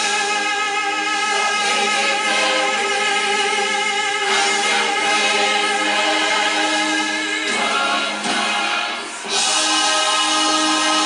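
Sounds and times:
choir singing: 0.0s - 11.0s.

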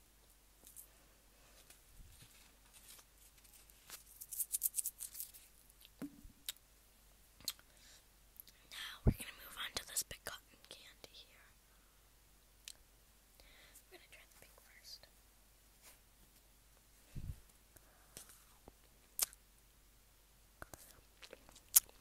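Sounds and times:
wet mouth clicks: 7.4s - 7.6s, 19.2s - 19.4s, 20.6s - 22.0s.

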